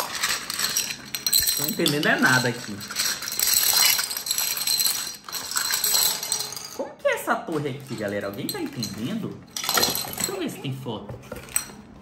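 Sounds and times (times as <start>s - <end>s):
plastic bag crinkling: 0.0s - 6.1s
plastic dominoes clattering on stone: 0.0s - 6.8s, 7.5s - 10.5s.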